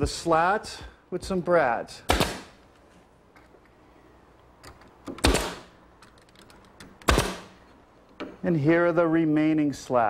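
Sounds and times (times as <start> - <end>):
nail gun firing: 2.1 - 2.6, 5.1 - 5.7, 7.0 - 7.6.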